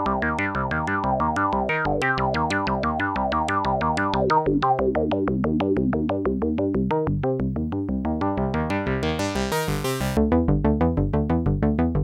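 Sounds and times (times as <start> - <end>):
synthesizer sequenced plucky notes: 0.0 - 12.0.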